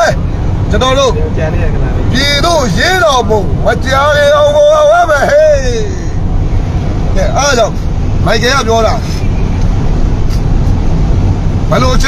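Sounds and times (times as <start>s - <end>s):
vehicle cabin rumble: 0.0s - 12.0s.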